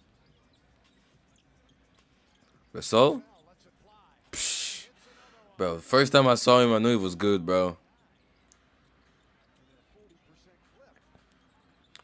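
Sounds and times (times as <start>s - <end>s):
commentator talking: 4.4s - 7.8s.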